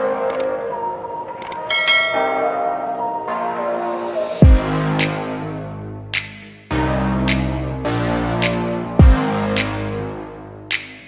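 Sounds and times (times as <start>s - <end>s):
background music: 0.0s - 11.0s
quick clicks: 0.3s - 0.5s
bright bell-like ding: 1.7s - 3.0s.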